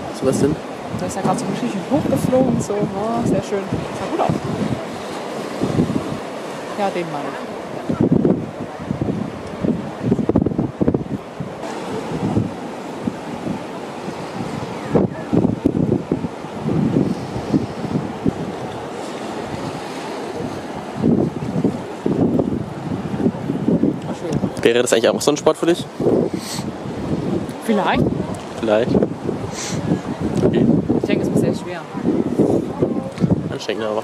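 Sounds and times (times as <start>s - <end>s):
sea waves breaking: 0.0s - 34.0s
wind buffeting microphone: 0.0s - 34.0s.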